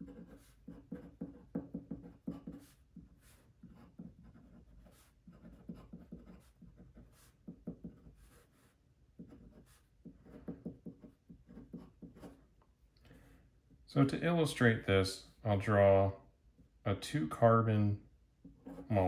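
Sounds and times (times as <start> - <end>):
pen nib scratching on paper: 0.0 - 12.4.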